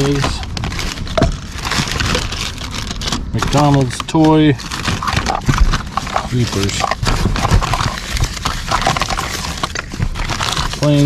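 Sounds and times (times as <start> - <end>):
packaging rustling: 0.0 - 11.0.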